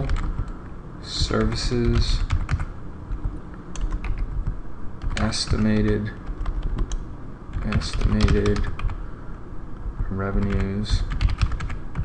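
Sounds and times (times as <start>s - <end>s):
computer keyboard typing: 0.0s - 0.6s, 1.2s - 9.0s, 10.3s - 12.0s.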